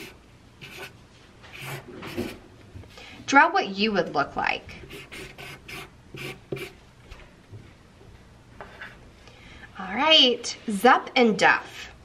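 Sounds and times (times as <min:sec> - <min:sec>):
pen scratching on paper: 0:00.0 - 0:02.4, 0:04.9 - 0:06.8.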